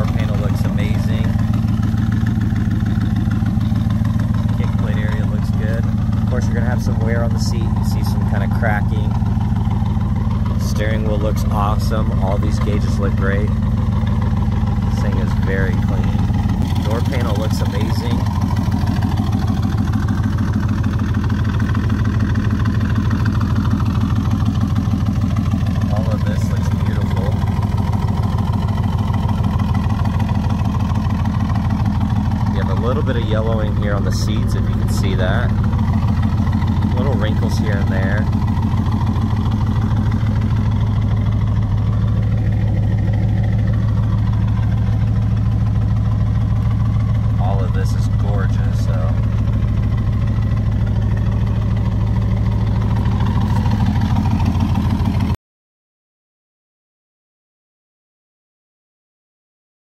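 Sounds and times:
car engine idling: 0.0 - 55.4.

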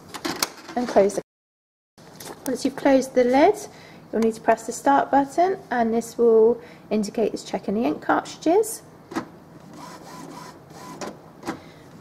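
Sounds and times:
printer motor whir: 9.6 - 11.2.

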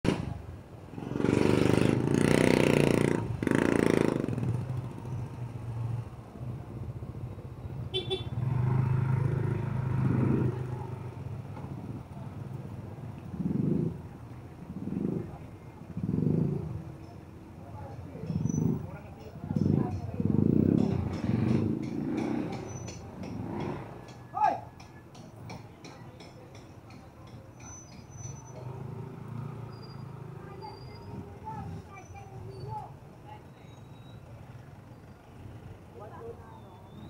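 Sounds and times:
city street traffic: 0.0 - 37.0
people's voices: 11.9 - 29.0, 30.2 - 37.0.

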